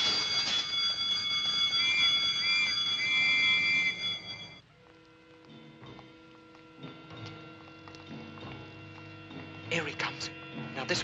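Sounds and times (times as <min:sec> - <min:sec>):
alarm bell ringing: 0:00.0 - 0:04.7.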